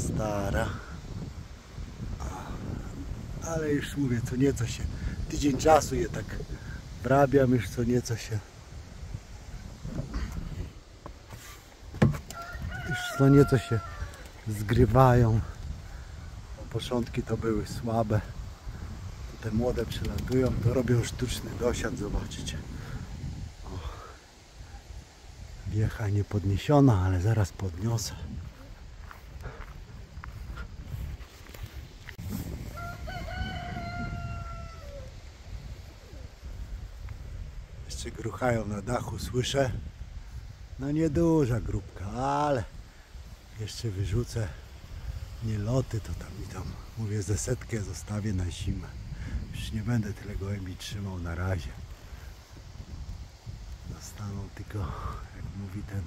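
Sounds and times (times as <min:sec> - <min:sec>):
wind rumble on microphone: 0:00.0 - 0:56.0
rooster crowing: 0:12.1 - 0:14.4, 0:32.5 - 0:35.3.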